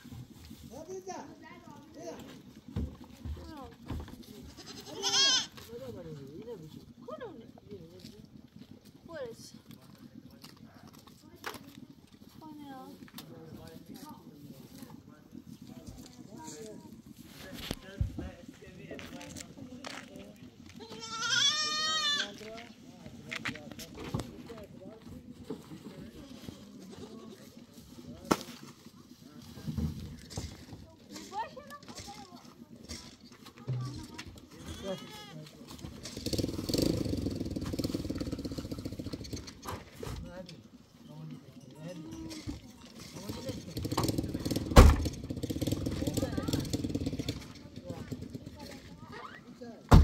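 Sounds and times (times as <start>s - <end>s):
goats bleating: 4.4s - 5.6s, 20.8s - 22.4s, 34.6s - 35.4s.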